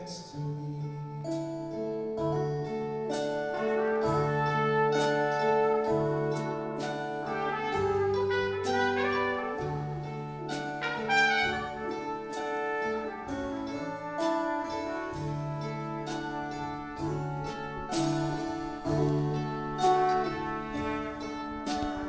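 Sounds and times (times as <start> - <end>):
bass: 0.0 - 22.0
slow melody of held notes: 0.0 - 22.0
strummed acoustic guitar: 0.0 - 22.0.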